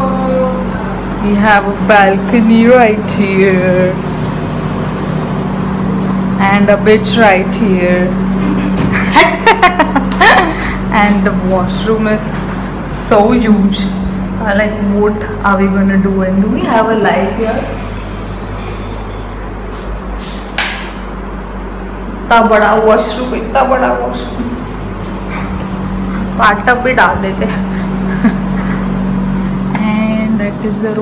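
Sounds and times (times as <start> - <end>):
low even hum: 0.0 - 31.0
outdoor ambience: 0.0 - 31.0.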